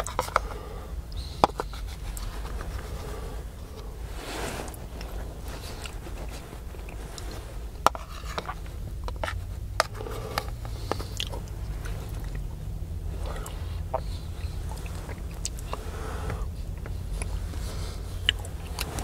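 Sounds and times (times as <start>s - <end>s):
low rumble: 0.0s - 19.0s
soft chewing: 0.0s - 19.0s.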